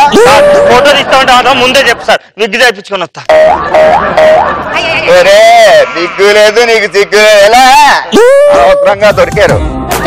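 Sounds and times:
comedy boing tones: 3.3 - 4.5.

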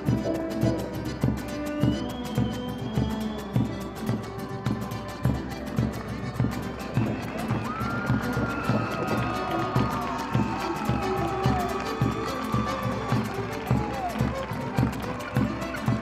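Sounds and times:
accordion: 0.0 - 16.0
guitars: 0.0 - 16.0
violin: 0.0 - 16.0.

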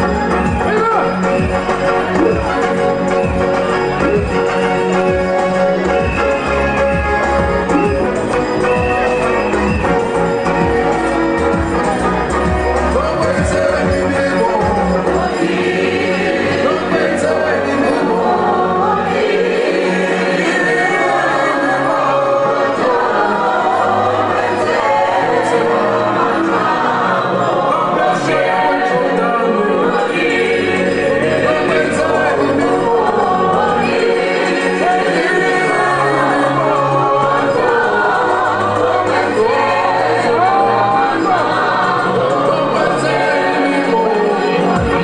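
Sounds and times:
choir singing a hymn: 1.9 - 45.0.

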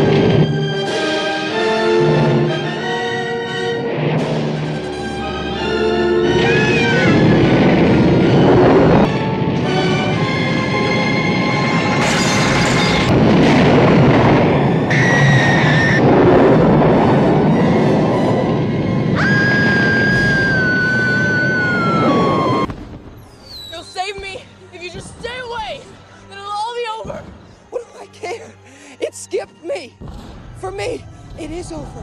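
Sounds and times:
dramatic music: 0.0 - 23.2, 23.8 - 32.0
roaring fire: 3.7 - 23.8
high held tone sinking in pitch: 17.3 - 22.7.

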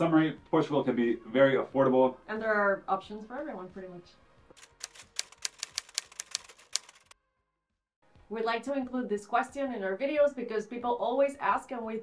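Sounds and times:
typewriter key clicks: 4.6 - 7.1.

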